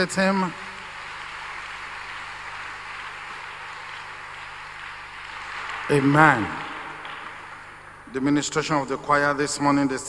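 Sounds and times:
crowd applauding: 0.0 - 8.9.

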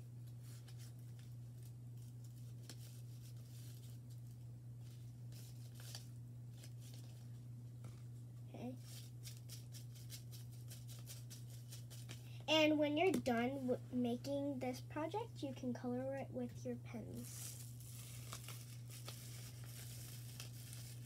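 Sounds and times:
steady low hum: 0.0 - 21.0
paper and plastic crinkling: 0.3 - 8.0, 17.1 - 21.0.

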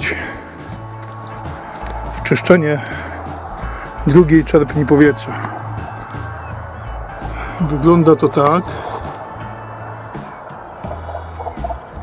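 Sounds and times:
background music with low bass: 0.0 - 12.0.

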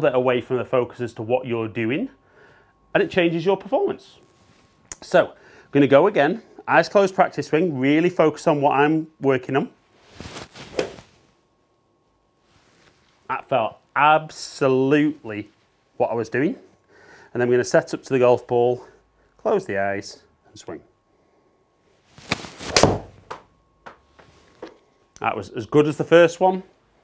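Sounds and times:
golf club swishing through air: 10.1 - 11.1.

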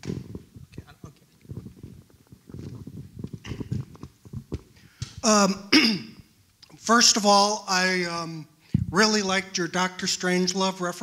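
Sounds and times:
faint rustle: 0.0 - 5.0.

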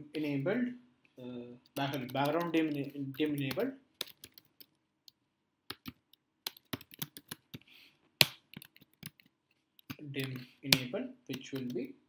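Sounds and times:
computer keyboard typing: 1.7 - 7.6, 8.2 - 11.9.

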